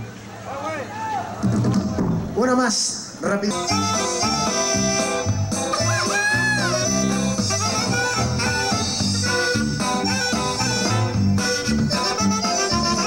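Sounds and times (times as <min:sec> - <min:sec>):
bass: 0:00.0 - 0:02.6, 0:03.2 - 0:13.0
drums: 0:01.3 - 0:02.6, 0:03.5 - 0:13.0
saxophone melody: 0:03.5 - 0:13.0.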